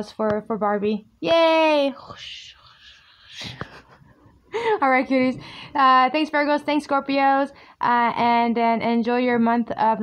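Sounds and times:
woman laughing softly: 3.4 - 4.9.

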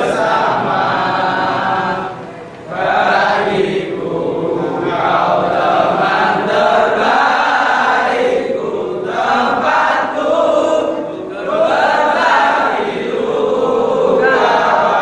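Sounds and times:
young men chanting in unison: 0.0 - 15.0.

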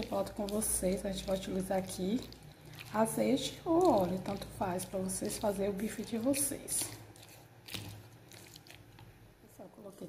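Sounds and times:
wet squelching of stirred liver: 0.0 - 10.0.

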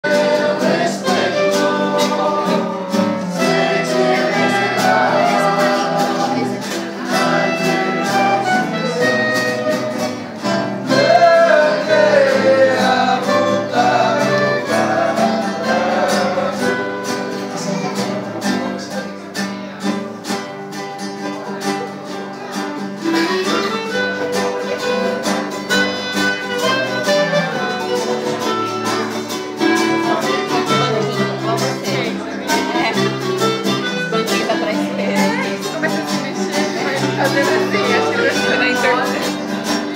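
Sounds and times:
voices singing: 0.0 - 19.6, 26.6 - 39.9
clarinets and guitars playing hymn: 0.0 - 39.9.

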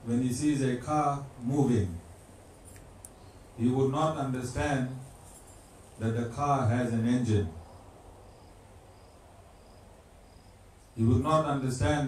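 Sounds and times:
low room hum: 0.0 - 12.0
cricket chirping: 7.1 - 11.0.

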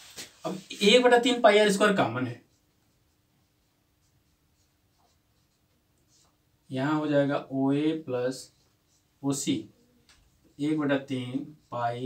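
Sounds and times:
marker pen writing on whiteboard: 0.4 - 12.0.

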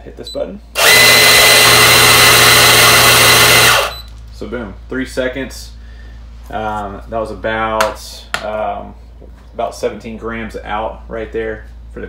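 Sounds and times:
coffee grinder motor whine: 0.8 - 4.0.

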